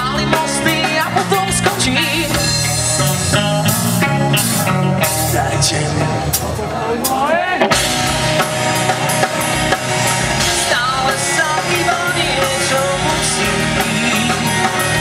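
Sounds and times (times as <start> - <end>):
live rock band: 0.0 - 15.0.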